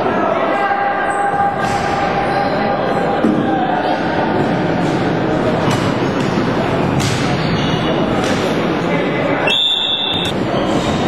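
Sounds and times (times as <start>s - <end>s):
noise of play in sports hall: 0.0s - 11.0s
referee's whistle blast: 9.5s - 10.3s.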